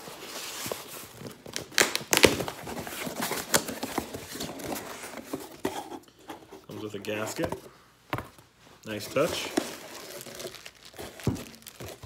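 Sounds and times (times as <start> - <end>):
cardboard flaps scraping and rustling: 0.0 - 6.0
cardboard knocks and crackles: 9.2 - 12.0.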